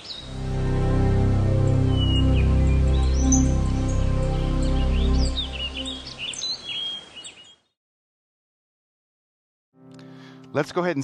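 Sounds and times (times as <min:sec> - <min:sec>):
birds chirping: 0:00.0 - 0:07.8
slow music: 0:00.2 - 0:06.3, 0:09.8 - 0:11.0.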